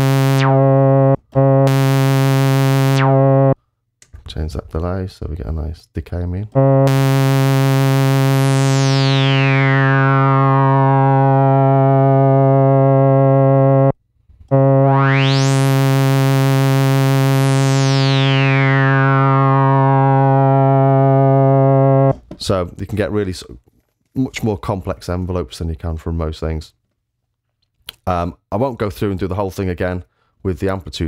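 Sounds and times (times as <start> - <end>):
synthesizer low note with filter sweep: 0.0 - 3.6, 6.6 - 22.1.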